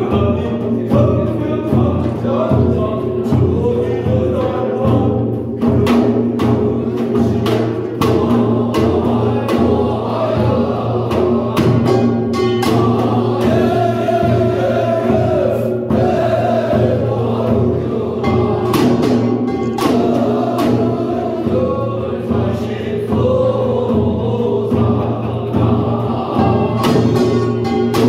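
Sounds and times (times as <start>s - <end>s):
barrel drum strokes: 0.0s - 28.0s.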